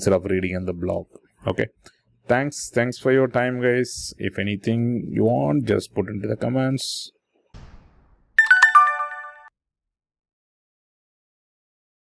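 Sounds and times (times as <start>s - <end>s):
falling bell-like chime notes: 8.4s - 9.5s.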